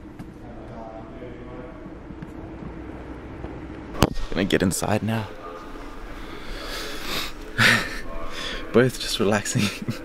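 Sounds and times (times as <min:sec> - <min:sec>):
room noise rumble: 0:00.0 - 0:10.0.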